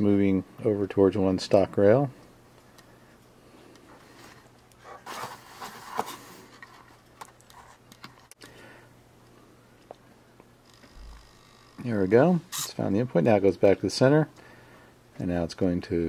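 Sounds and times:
low steady hum: 0.0s - 16.0s
handling noise rustling: 3.9s - 8.3s.

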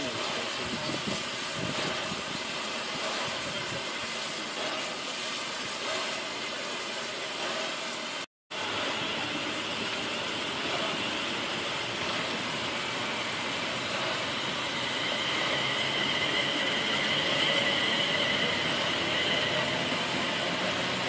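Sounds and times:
steam hissing from locomotive: 0.0s - 21.0s.

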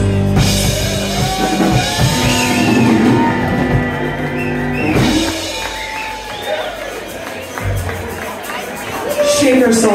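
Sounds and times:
live band playing: 0.0s - 9.9s.

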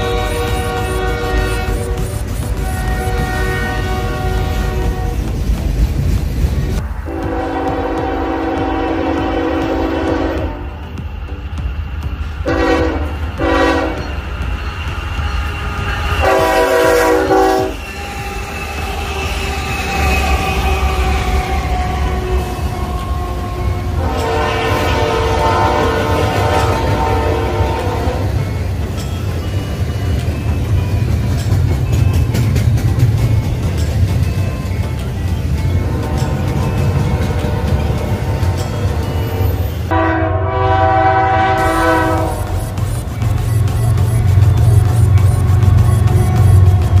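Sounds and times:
locomotive air horn: 0.0s - 5.3s, 6.8s - 11.0s, 12.4s - 14.3s, 15.1s - 28.6s, 35.9s - 42.8s
train rumbling on rails: 0.0s - 47.0s.

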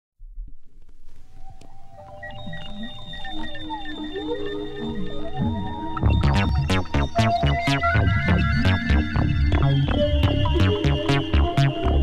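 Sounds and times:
electronic sounds sliding in pitch: 2.0s - 12.0s
held synthesizer notes: 2.0s - 12.0s.

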